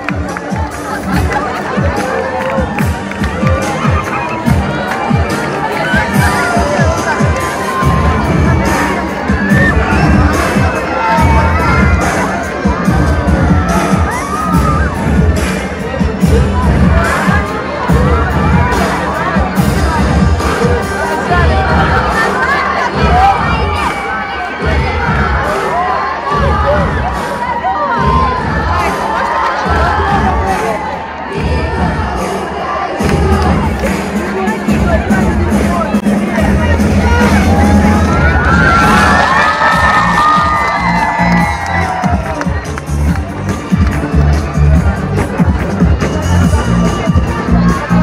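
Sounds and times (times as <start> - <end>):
amplified music with bass beat: 0.0 - 22.2, 33.0 - 48.0
crowd cheering and shouting: 0.0 - 48.0.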